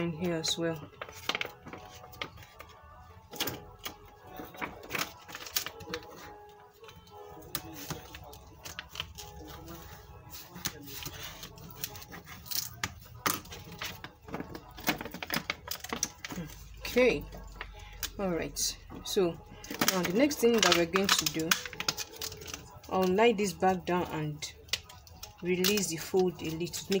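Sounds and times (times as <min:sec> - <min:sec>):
plastic sheet crackling and clicking: 0:00.7 - 0:09.8, 0:10.4 - 0:18.1, 0:19.6 - 0:23.2, 0:24.5 - 0:27.0.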